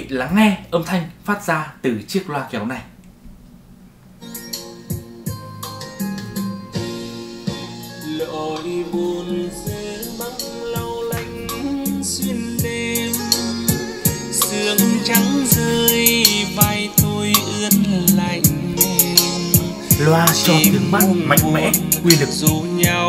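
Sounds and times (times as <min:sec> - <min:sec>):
song through speaker: 0:04.3 - 0:23.0
instruments and drums: 0:04.4 - 0:23.0
person singing: 0:07.5 - 0:23.0.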